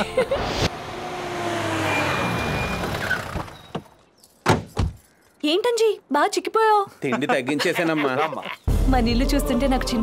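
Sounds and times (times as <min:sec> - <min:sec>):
car engines: 0:00.4 - 0:04.0.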